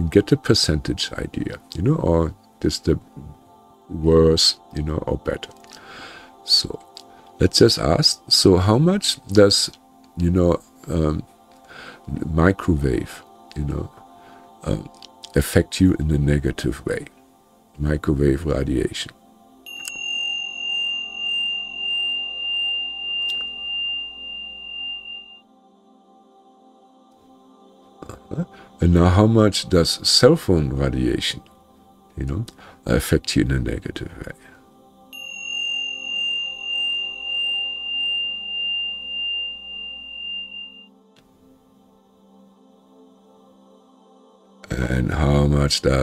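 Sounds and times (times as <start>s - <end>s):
soft ambient music: 0.0s - 46.0s
high ringing tone pulsing: 19.7s - 25.4s, 35.1s - 40.9s.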